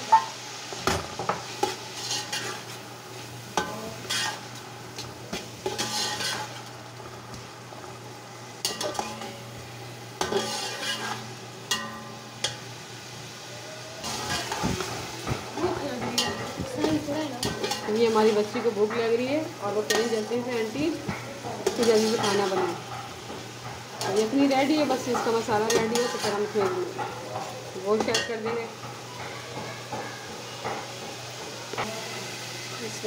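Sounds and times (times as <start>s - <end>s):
tomatoes sizzling in hot oil: 0.0s - 33.0s
spatula scraping metal pot: 1.6s - 2.8s, 3.6s - 4.4s, 5.6s - 6.6s, 10.2s - 11.8s, 21.6s - 23.3s, 24.0s - 27.2s.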